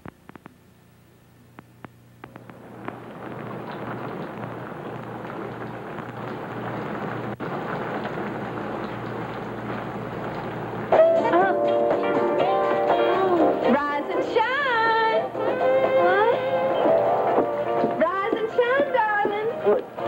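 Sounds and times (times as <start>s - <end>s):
rain-like hiss: 1.6s - 20.0s
music with singing voice: 10.9s - 20.0s.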